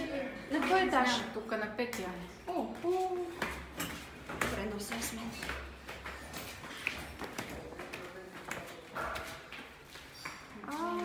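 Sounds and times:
footsteps on concrete stairs: 0:02.6 - 0:11.0.

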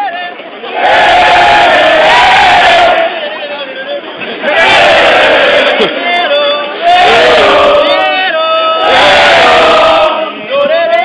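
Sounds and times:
crowd singing and shouting: 0:00.0 - 0:11.0.

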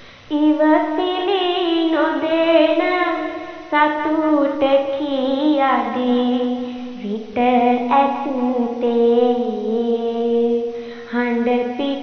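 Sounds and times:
girl singing unaccompanied chant: 0:00.0 - 0:12.0.

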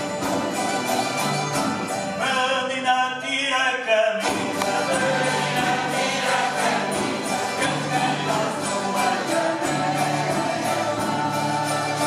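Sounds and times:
strummed string instruments: 0:00.0 - 0:12.0
group singing together: 0:04.2 - 0:12.0.

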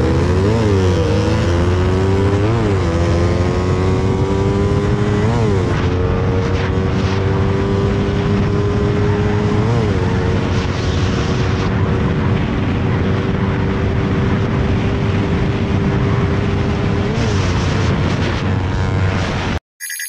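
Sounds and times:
motorcycle engine at full throttle: 0:00.0 - 0:19.6
wind rushing on microphone: 0:00.0 - 0:19.6.

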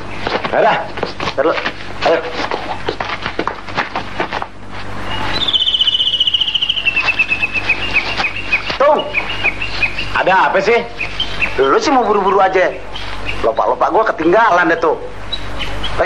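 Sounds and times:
bird trilling: 0:05.0 - 0:16.0.

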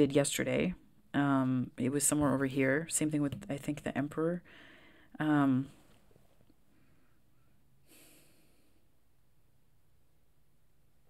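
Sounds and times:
faint breath through nose: 0:04.5 - 0:05.1, 0:06.7 - 0:08.8.

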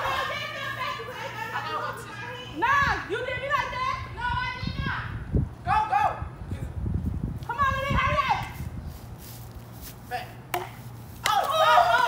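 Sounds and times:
low rumble on microphone: 0:02.7 - 0:09.6
high-pitched shout: 0:11.2 - 0:12.0.

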